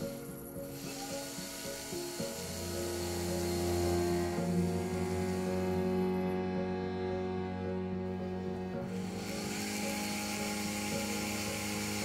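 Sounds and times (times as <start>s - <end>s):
rotary polishing tool hissing: 0.0s - 6.3s, 8.8s - 12.0s
background music: 0.0s - 12.0s.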